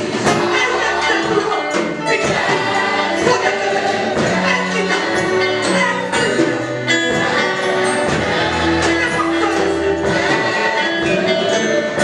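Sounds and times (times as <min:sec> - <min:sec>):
gospel choir over loudspeakers: 0:00.0 - 0:12.0.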